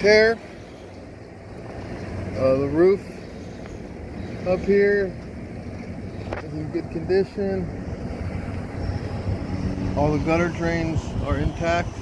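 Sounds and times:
wind buffeting microphone: 0:01.0 - 0:12.0.

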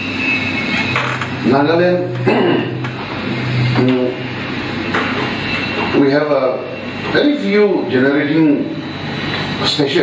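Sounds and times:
public address hum and hiss: 0:00.0 - 0:10.0.

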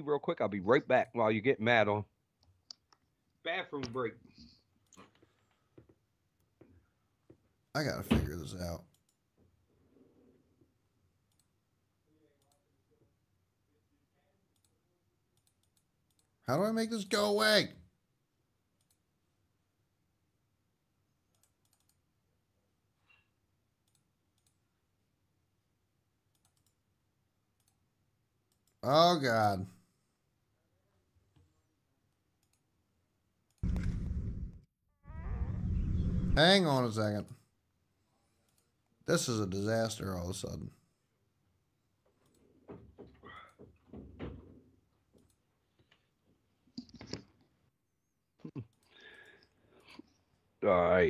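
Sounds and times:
computer mouse clicks: 0:11.2 - 0:11.6, 0:14.5 - 0:16.4, 0:18.8 - 0:19.0, 0:21.3 - 0:22.0, 0:23.1 - 0:24.6, 0:26.3 - 0:26.8, 0:27.6 - 0:27.8, 0:32.4 - 0:32.7, 0:42.2 - 0:42.5
faint computer mouse clicks: 0:21.3 - 0:22.0, 0:26.3 - 0:26.8.

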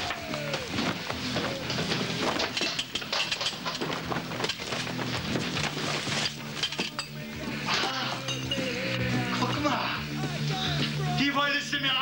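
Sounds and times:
objects clattering on hard floor: 0:00.0 - 0:08.7.

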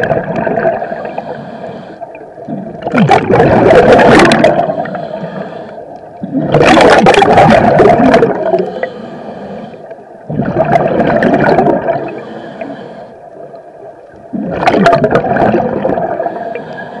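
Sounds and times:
exhaled bubbles bursting: 0:00.0 - 0:01.0, 0:02.5 - 0:04.8, 0:06.2 - 0:08.6, 0:10.3 - 0:12.1, 0:14.2 - 0:16.3
regulator inhale hiss: 0:00.8 - 0:02.3, 0:04.6 - 0:06.0, 0:08.6 - 0:10.1, 0:12.0 - 0:13.4, 0:16.2 - 0:17.0.

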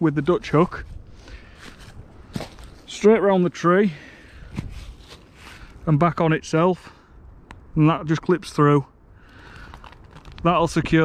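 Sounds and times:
footsteps crunching dry leaves: 0:00.9 - 0:02.9, 0:04.6 - 0:05.7.

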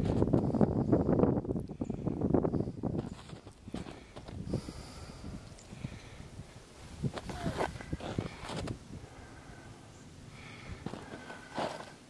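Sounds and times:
footsteps crunching through snow: 0:03.0 - 0:04.4, 0:06.8 - 0:08.8, 0:10.8 - 0:12.0.

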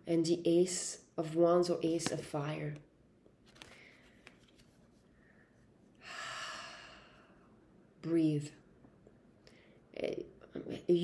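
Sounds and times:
woman exhaling: 0:06.0 - 0:07.5.

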